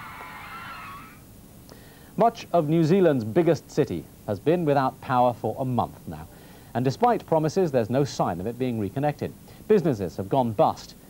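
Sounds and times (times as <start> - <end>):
crowd of girls screaming: 0.0 - 1.2.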